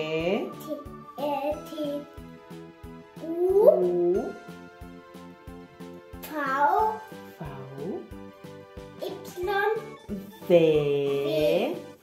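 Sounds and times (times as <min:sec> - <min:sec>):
children's music with beat: 0:00.0 - 0:12.0.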